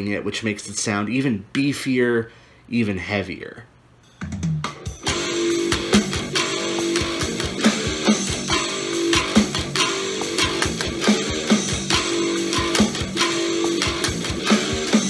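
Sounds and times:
drum track: 4.0 - 15.0
bare guitar strings strumming: 4.3 - 15.0
electric guitar chugging from speakers: 4.4 - 15.0.

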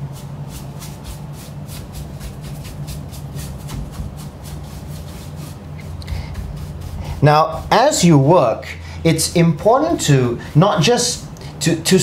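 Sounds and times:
bristle brush sweeping: 0.0 - 11.1.

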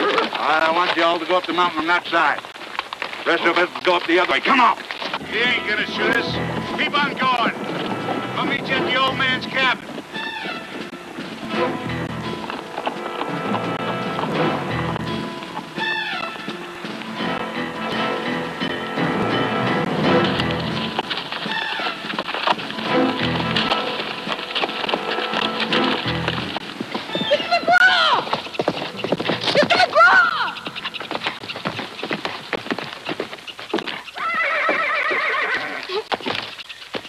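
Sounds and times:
horse hoofbeats on rocky ground: 0.0 - 37.0
orchestral music: 5.2 - 21.4, 22.7 - 26.6
horse whinnying: 10.1 - 10.8, 15.8 - 16.4, 21.4 - 22.2, 33.8 - 36.1.

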